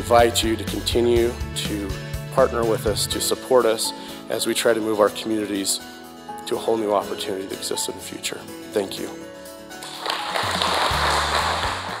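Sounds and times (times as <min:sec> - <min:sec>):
background music with bass: 0:00.0 - 0:07.7, 0:08.3 - 0:12.0
audience applauding: 0:09.8 - 0:12.0.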